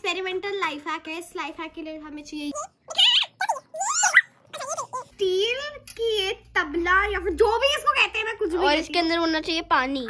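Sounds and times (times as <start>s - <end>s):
child squealing: 2.5s - 5.1s.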